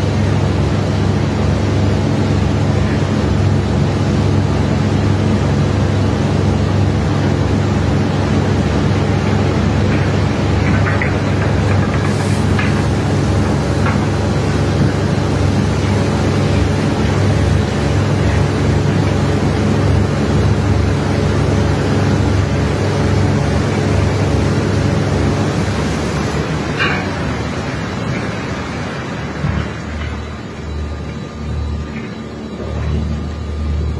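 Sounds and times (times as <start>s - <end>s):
heavy machinery hum and hiss: 0.0s - 33.9s
metal clank: 26.7s - 27.5s.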